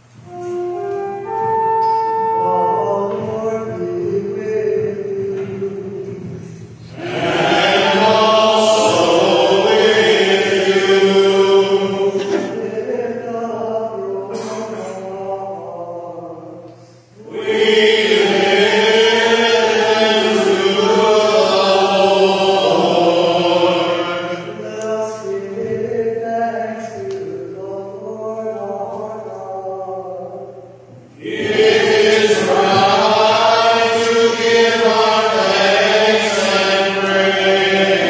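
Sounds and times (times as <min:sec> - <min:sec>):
voices singing a chant: 0:00.2 - 0:38.0.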